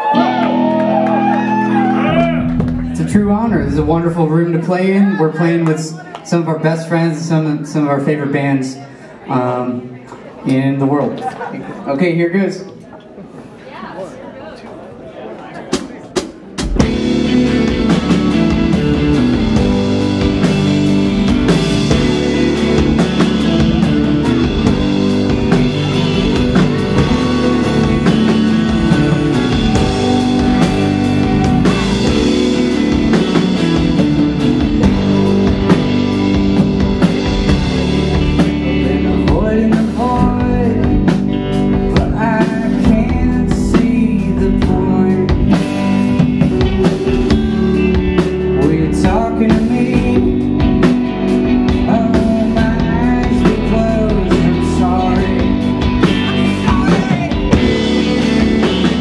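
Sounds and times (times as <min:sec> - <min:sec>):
rock band playing live: 0:00.0 - 0:10.3, 0:15.6 - 0:59.0
person singing: 0:21.8 - 0:33.6, 0:34.9 - 0:59.0.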